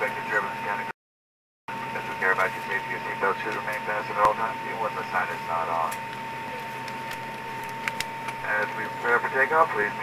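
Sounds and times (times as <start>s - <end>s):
steady high whine: 0.0s - 1.0s, 1.7s - 10.0s.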